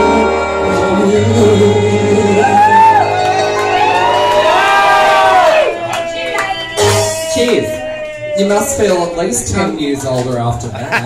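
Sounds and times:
background music: 0.0s - 11.0s
crowd cheering: 2.2s - 10.0s.

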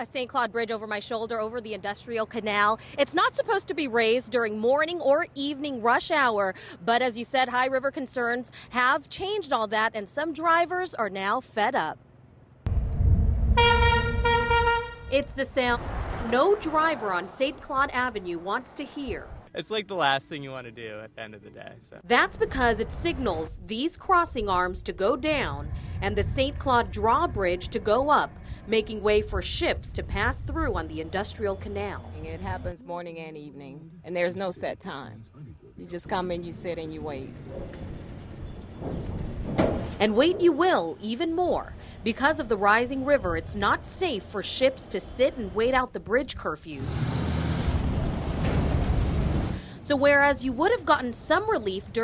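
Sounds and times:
road traffic noise: 12.0s - 20.2s, 22.1s - 32.8s, 33.9s - 52.0s
low rumble: 12.6s - 14.3s, 22.3s - 32.8s
vehicle passing: 13.0s - 19.5s, 46.7s - 50.4s
drawbridge warning horn: 13.5s - 15.4s.

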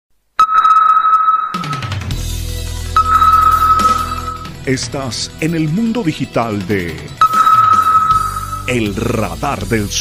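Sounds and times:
high electronic beep: 0.4s - 2.1s, 3.0s - 4.7s, 7.2s - 9.0s.

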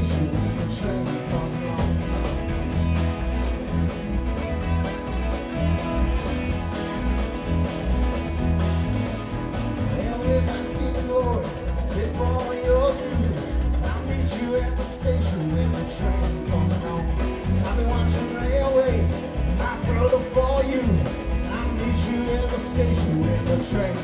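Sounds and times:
live rock band playing: 0.0s - 24.0s.

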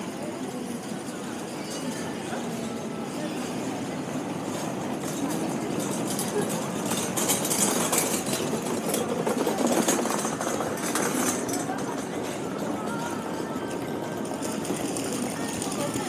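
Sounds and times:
people's voices: 0.0s - 16.0s
wheels rolling over brick paving: 5.0s - 16.0s.

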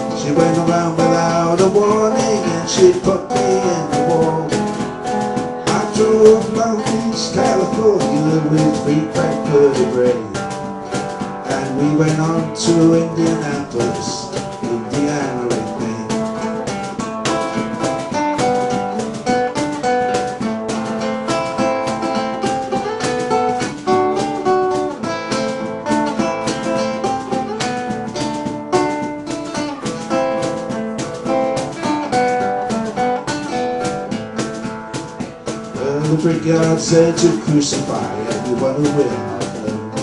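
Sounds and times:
acoustic guitar strumming: 0.0s - 40.0s.

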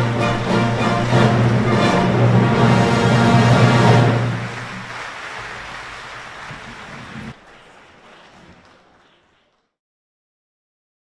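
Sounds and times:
orchestra closing chord: 0.0s - 4.8s
noisy hall sound: 0.0s - 9.8s.

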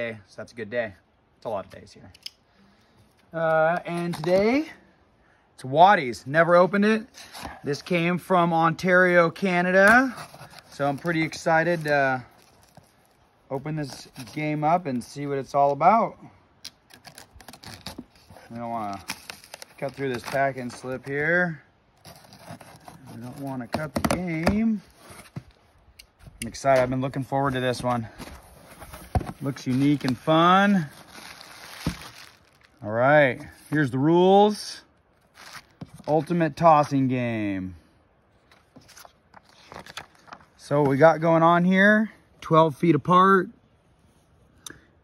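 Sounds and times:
fingers scratching packing tape: 22.0s - 23.9s
paper sheets rustling: 26.7s - 32.8s, 38.5s - 40.5s.

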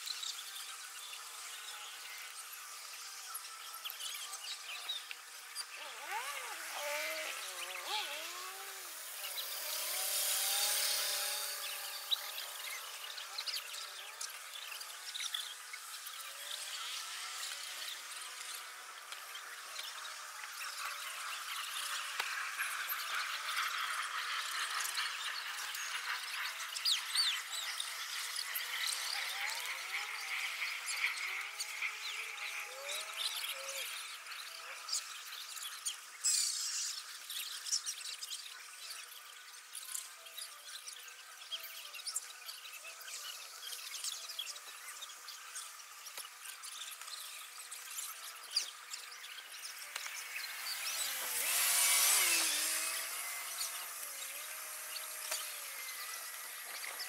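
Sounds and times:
birds chirping and calling: 4.7s - 22.0s.

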